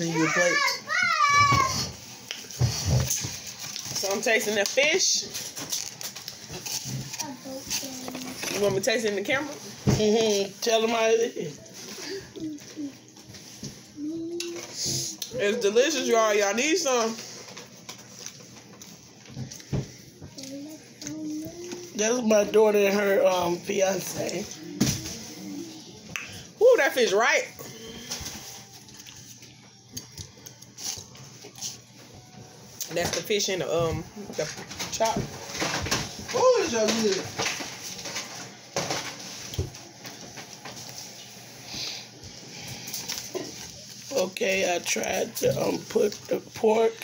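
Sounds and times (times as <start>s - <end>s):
faint room hum: 0.0s - 47.0s
plastic forks on paper plates: 0.2s - 25.6s.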